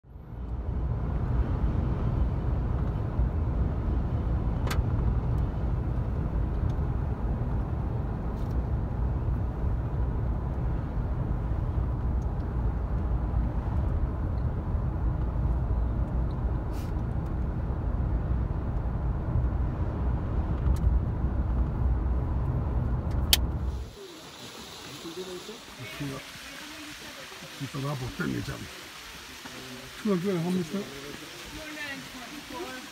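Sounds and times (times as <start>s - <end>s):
quiet outdoor ambience: 0.0s - 32.9s
car driving from inside cabin: 0.4s - 23.8s.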